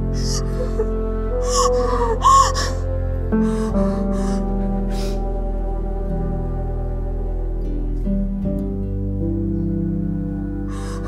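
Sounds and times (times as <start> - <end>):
slow background music: 0.0 - 11.0
woman crying and sobbing: 0.1 - 5.3.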